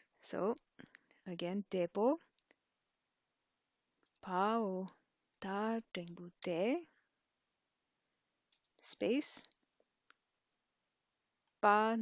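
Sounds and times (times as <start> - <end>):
person speaking: 0.2 - 2.5, 4.2 - 7.0, 8.8 - 9.6.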